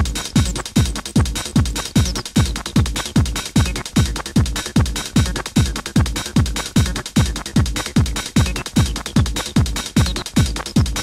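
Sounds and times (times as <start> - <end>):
busy hi-hats and percussion: 0.0 - 11.0
techno kick drum: 0.0 - 11.0.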